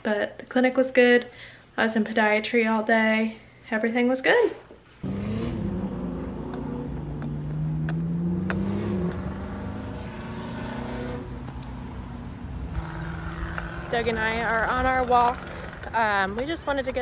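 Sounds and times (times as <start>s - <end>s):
car engine accelerating: 5.0s - 17.0s.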